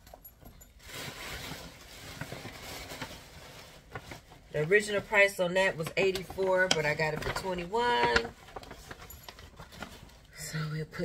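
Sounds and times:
tissue paper rustling: 0.6s - 10.4s.

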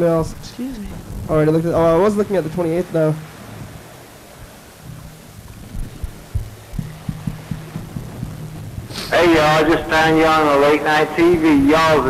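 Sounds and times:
low electrical hum: 0.0s - 12.0s
microphone handling thumps: 0.0s - 12.0s.

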